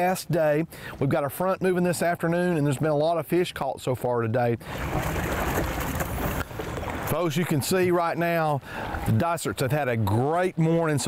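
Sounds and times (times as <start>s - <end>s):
water sloshing and splashing: 4.6s - 9.7s.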